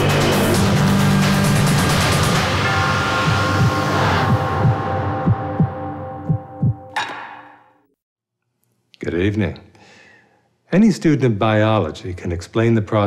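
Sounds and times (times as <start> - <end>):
dark suspenseful music: 0.0 - 7.0
low heartbeat thuds: 3.3 - 6.9.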